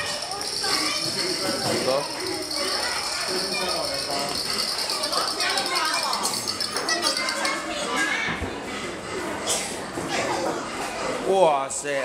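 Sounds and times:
chatter of children and adults: 0:00.0 - 0:12.0.

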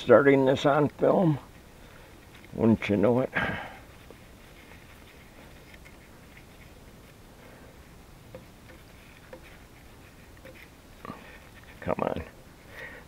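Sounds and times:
low steady background hiss: 0:00.0 - 0:13.0.

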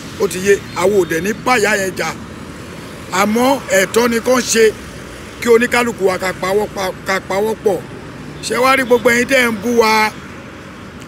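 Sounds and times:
man talking: 0:00.1 - 0:02.3, 0:03.1 - 0:10.2.

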